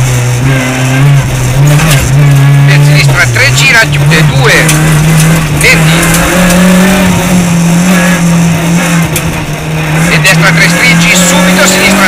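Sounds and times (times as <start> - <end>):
car engine at high revs: 0.0 - 12.0.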